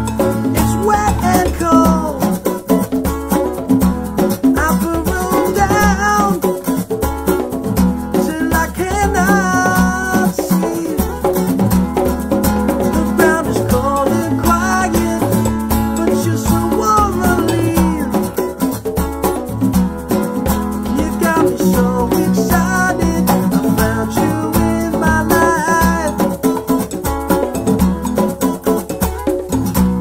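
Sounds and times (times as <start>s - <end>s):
acoustic guitar strumming: 0.0s - 30.0s
congas: 0.0s - 30.0s
hand percussion: 0.0s - 30.0s
man singing: 0.5s - 2.7s, 4.5s - 6.8s, 8.2s - 11.5s, 12.8s - 18.7s, 20.8s - 27.0s.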